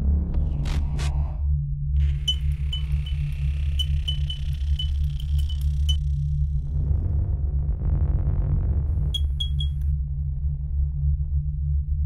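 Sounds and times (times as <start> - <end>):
deep electronic drone: 0.0 - 12.0
high electronic pings: 2.2 - 6.0, 9.2 - 9.8.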